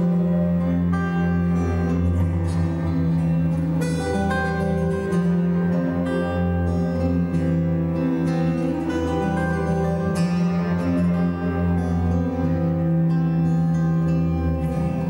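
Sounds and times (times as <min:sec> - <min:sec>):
acoustic guitar picked: 0:00.0 - 0:15.0
bowed bass guitar low notes: 0:00.0 - 0:15.0.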